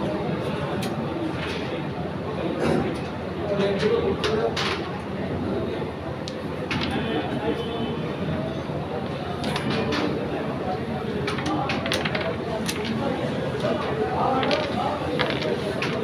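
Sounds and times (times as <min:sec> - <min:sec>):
murmur of voices: 0:00.0 - 0:16.0
wooden clacks of carrom pieces: 0:03.0 - 0:04.9, 0:06.3 - 0:07.1, 0:09.4 - 0:10.3, 0:11.2 - 0:16.0.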